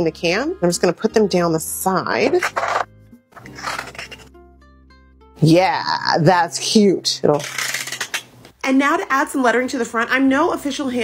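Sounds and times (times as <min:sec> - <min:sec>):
plucked-string background music: 0:00.0 - 0:08.1
scissors cutting cardstock: 0:02.3 - 0:04.3.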